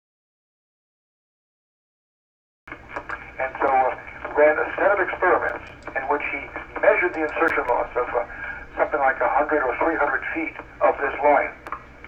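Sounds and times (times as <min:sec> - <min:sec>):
person speaking telephone-like: 0:02.7 - 0:11.7
faint low hum: 0:02.7 - 0:12.0.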